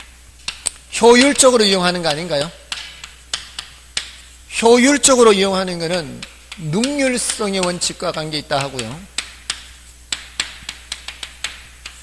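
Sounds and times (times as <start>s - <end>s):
chalk tapping on chalkboard: 0.0s - 4.4s, 5.0s - 12.0s.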